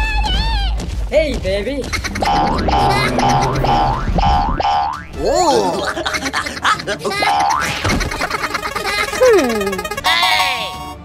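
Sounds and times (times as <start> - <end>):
background music: 0.0 - 11.0
cartoon sound effects: 2.0 - 5.8, 7.6 - 11.0.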